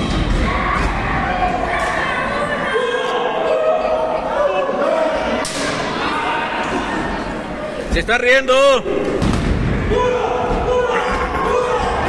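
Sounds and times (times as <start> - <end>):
spectators' voices echoing: 0.0 - 12.0.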